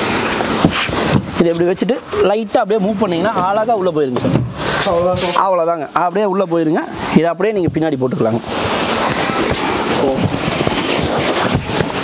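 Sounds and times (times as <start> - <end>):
sofa bed crackling rustle: 8.4 - 12.0.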